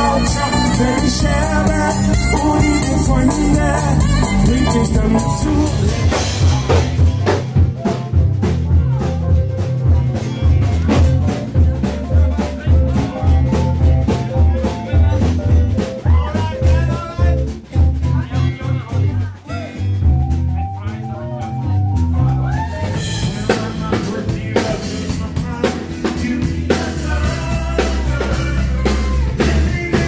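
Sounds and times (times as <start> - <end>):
drum kit beat: 0.0 - 30.0
pop band playing: 0.0 - 30.0.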